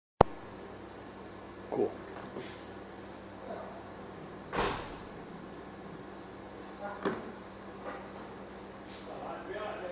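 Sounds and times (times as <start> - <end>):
steady low hum: 0.2 - 9.9.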